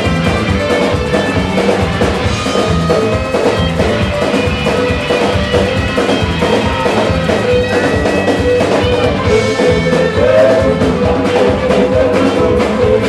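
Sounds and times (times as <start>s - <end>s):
electric guitars: 0.0s - 13.0s
samba-reggae band playing: 0.0s - 13.0s.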